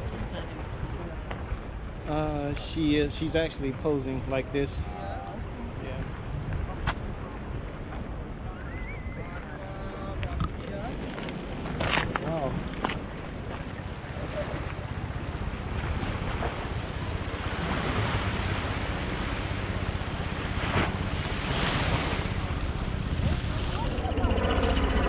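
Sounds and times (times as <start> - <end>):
wind buffeting microphone: 0.0 - 25.0
waves splashing against rocks: 10.2 - 24.0.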